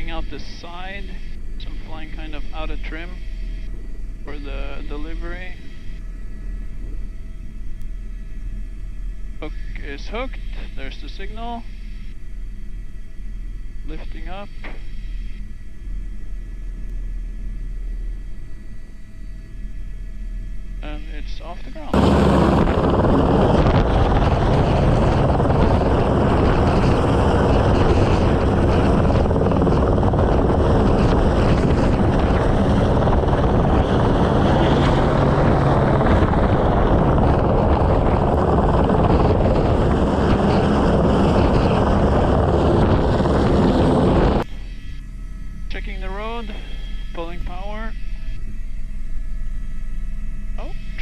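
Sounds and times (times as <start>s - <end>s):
cockpit hum: 0.0s - 51.0s
helicopter rotor and turbine noise: 0.0s - 51.0s.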